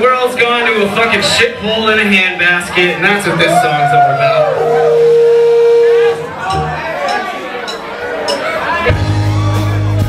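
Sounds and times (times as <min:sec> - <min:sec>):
steady high tone from speakers: 0:02.7 - 0:07.0
low stage hum: 0:02.8 - 0:06.9.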